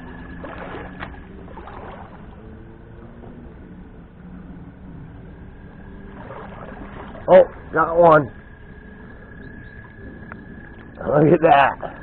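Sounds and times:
creek water flowing: 0.0 - 12.0
faint high whine: 0.0 - 12.0.

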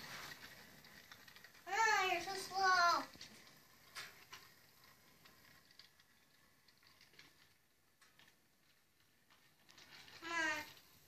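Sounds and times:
faint ticking of toy train: 0.0 - 11.0.

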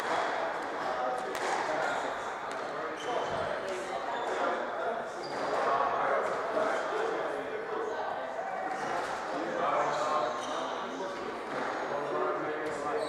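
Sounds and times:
chatter of voices: 0.0 - 13.0
shoe squeaks on wooden floor: 2.9 - 4.4.

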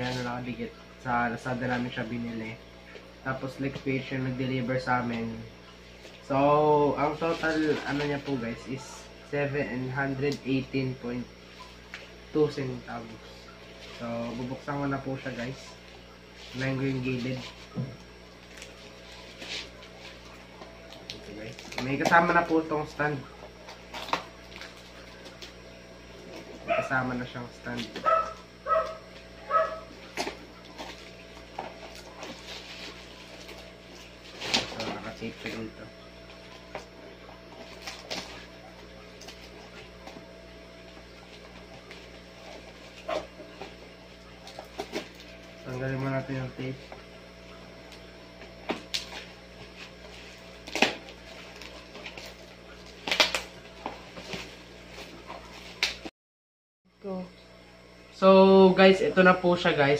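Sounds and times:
plastic and cardboard crackling: 16.3 - 22.8, 27.7 - 35.7, 47.9 - 56.1
small dog barking: 26.6 - 26.9, 28.0 - 29.9.

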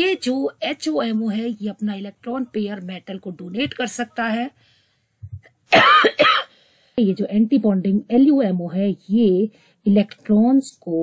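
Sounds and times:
woman coughing: 5.7 - 6.5.

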